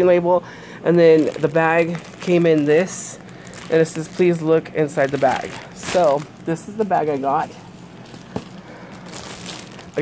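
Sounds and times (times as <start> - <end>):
plastic bag crinkling: 0.9 - 10.0.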